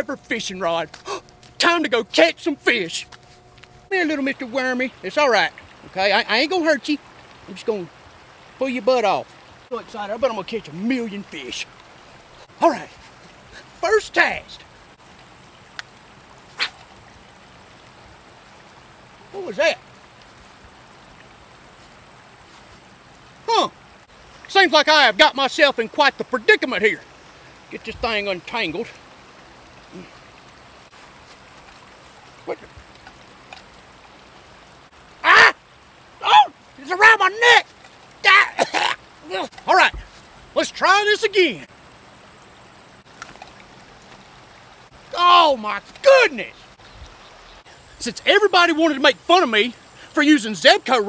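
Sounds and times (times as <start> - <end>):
faint outdoor background hiss: 0.0 - 51.0
fishing rod swish: 16.5 - 16.9.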